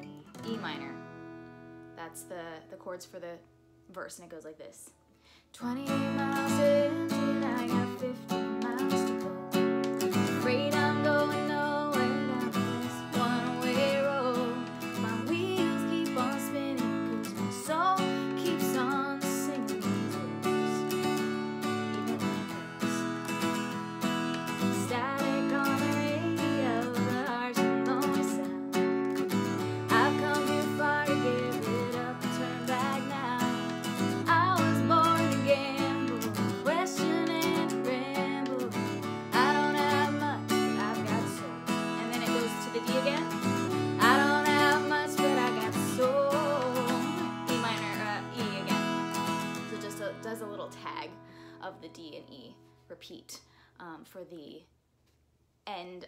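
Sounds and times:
acoustic guitar strumming: 0.0 - 3.3, 5.6 - 51.3
woman singing: 5.5 - 21.3, 22.0 - 23.7, 24.5 - 54.6.

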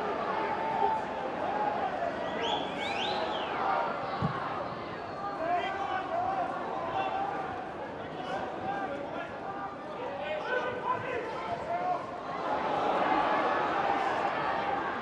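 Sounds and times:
murmur of small crowd: 0.0 - 15.0.

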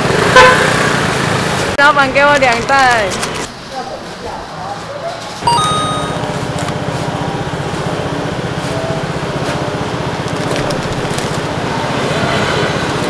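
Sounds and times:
short high beep: 5.4 - 6.5.

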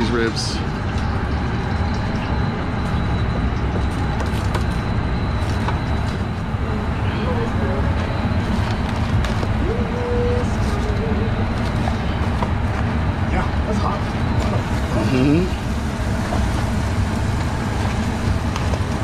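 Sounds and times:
faint voices: 9.5 - 12.3.

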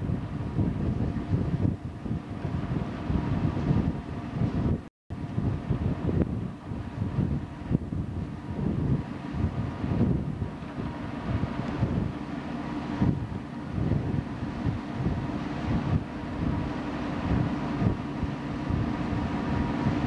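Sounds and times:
ship engine hum: 0.0 - 20.0
wind buffeting microphone: 0.0 - 20.0.

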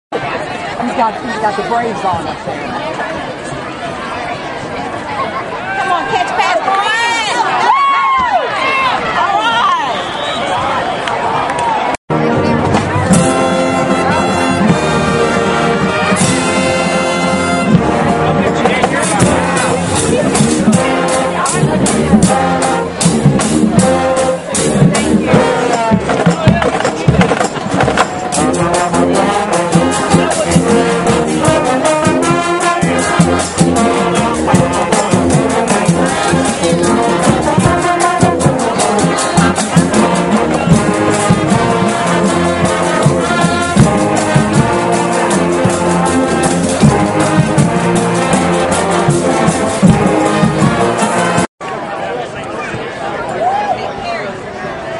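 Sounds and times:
people talking nearby: 0.1 - 54.9
marching band playing: 0.8 - 2.9, 5.8 - 10.2, 12.1 - 51.5
drum hits: 12.1 - 51.5.

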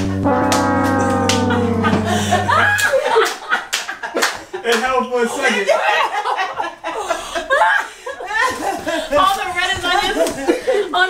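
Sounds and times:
brass chord: 0.0 - 3.3
people laughing and exclaiming: 5.4 - 9.5.

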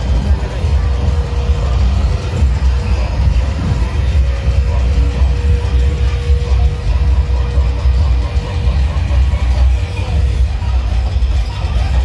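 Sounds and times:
loud dance music with heavy bass: 0.0 - 12.0.

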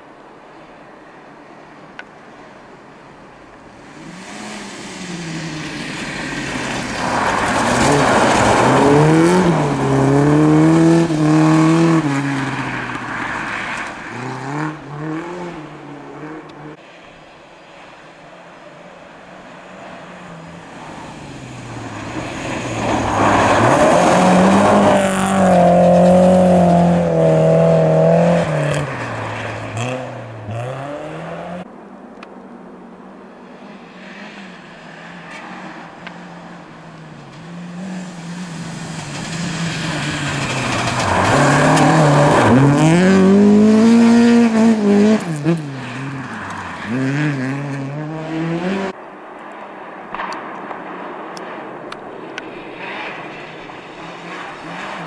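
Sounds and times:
rally cars revving past: 3.8 - 16.8, 19.8 - 31.7, 33.8 - 49.0, 52.6 - 55.0.

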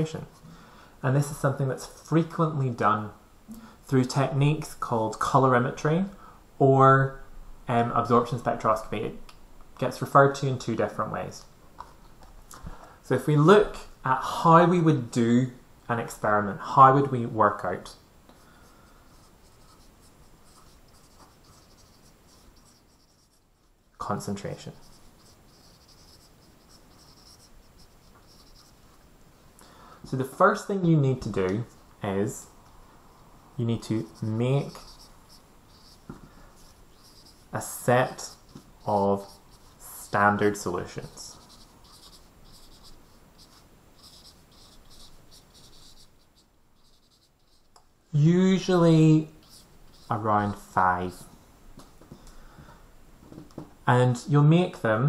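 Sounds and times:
marker scratching on whiteboard: 18.4 - 29.1, 33.6 - 47.7, 48.6 - 51.4.

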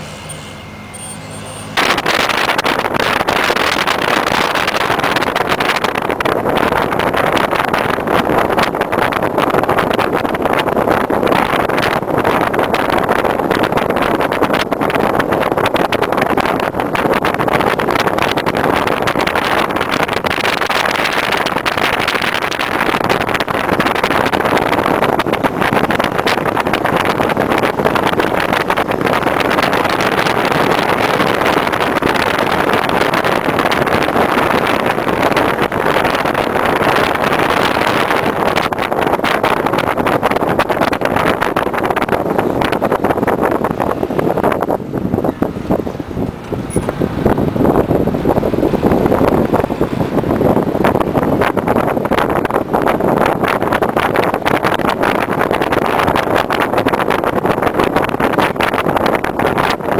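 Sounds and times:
car engine running: 0.0 - 56.7
road and wind noise: 0.0 - 59.9.

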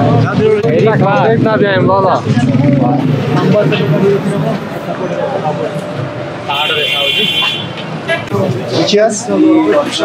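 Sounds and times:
street voices: 0.0 - 10.0
traffic noise: 0.0 - 10.0
vehicle horn: 6.5 - 8.3.

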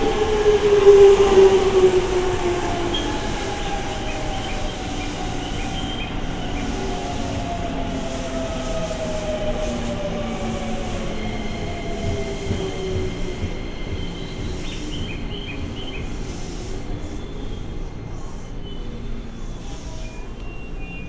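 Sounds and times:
train wheels rolling: 0.0 - 20.8.

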